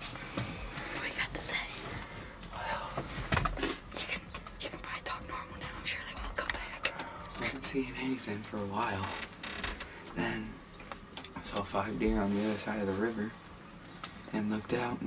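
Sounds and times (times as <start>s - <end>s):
person whispering: 0.9s - 1.9s, 4.0s - 7.6s.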